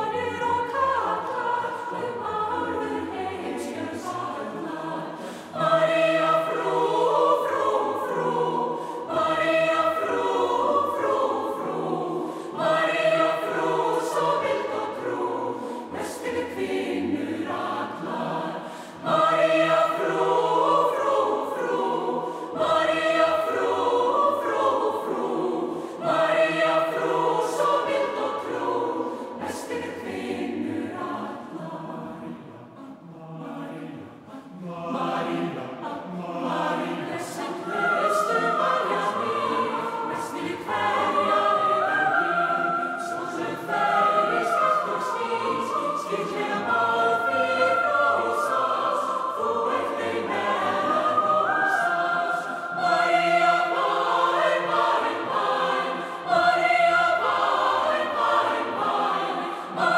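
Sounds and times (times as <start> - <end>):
mixed choir singing unaccompanied: 0.0 - 59.9.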